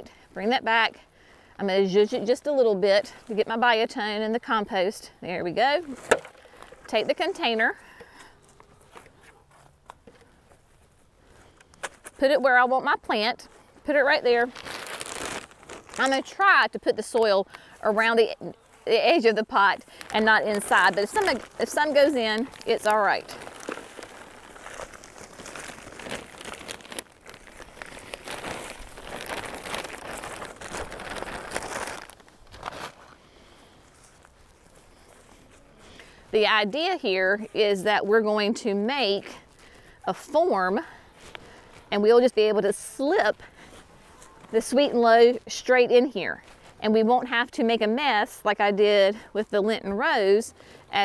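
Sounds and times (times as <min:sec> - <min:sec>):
soil pouring from plastic bag: 0:14.5 - 0:16.0, 0:19.9 - 0:33.0
faint rustling: 0:18.5 - 0:36.6.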